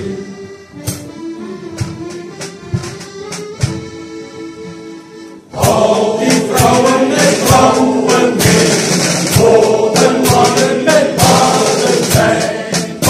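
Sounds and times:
men's choir singing: 0:00.0 - 0:00.6, 0:05.5 - 0:13.0
drum kit beat: 0:00.0 - 0:04.2, 0:05.6 - 0:13.0
held instrumental notes: 0:00.0 - 0:13.0.

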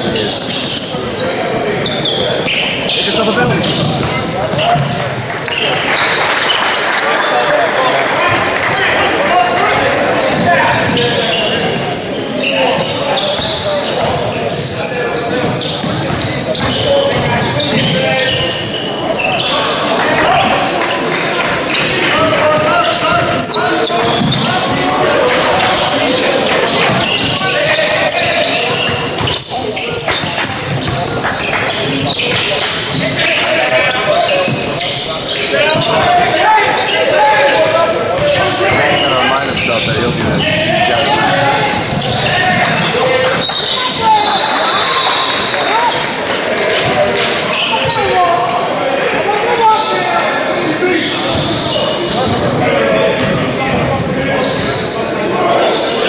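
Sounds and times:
indistinct voices: 0:00.0 - 0:56.0
basketball bouncing on wooden court: 0:03.4 - 0:05.1, 0:15.4 - 0:18.4, 0:22.5 - 0:24.7.

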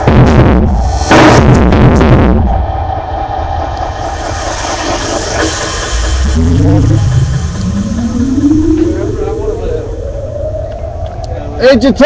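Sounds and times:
bus engine rumbling: 0:00.0 - 0:11.6
street noise: 0:00.0 - 0:12.0
rising tone: 0:02.5 - 0:12.0.

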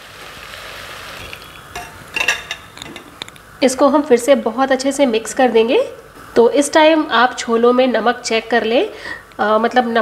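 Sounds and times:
liquid pouring and sizzling: 0:00.0 - 0:03.5.

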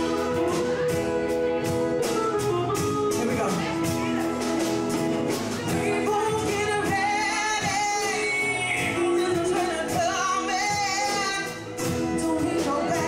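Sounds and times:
bass: 0:00.0 - 0:13.0
drums: 0:00.0 - 0:13.0
electric guitar: 0:00.0 - 0:13.0
keyboard: 0:00.0 - 0:13.0
woman singing: 0:05.6 - 0:13.0.

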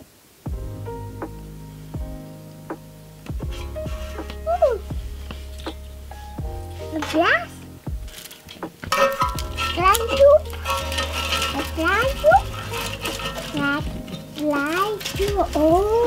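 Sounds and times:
background music: 0:00.5 - 0:16.0.

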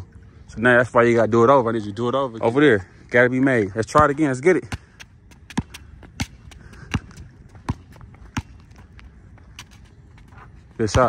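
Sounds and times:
basketball bouncing on asphalt: 0:03.8 - 0:11.0.

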